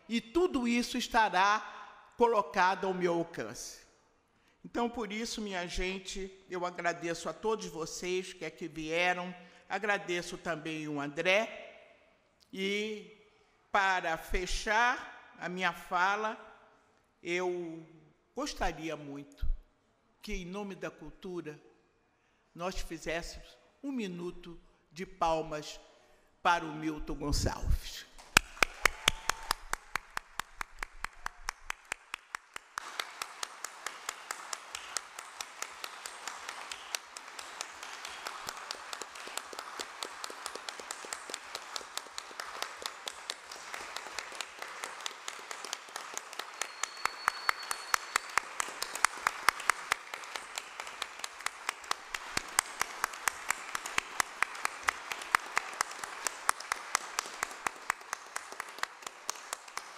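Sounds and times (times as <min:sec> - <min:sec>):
audience applause: 0:28.2 - 0:59.9
sharp steady claps: 0:28.2 - 0:59.9.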